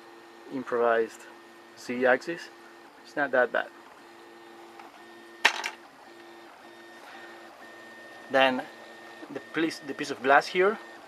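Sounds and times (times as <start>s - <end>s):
stepper motors humming: 0.0s - 11.0s.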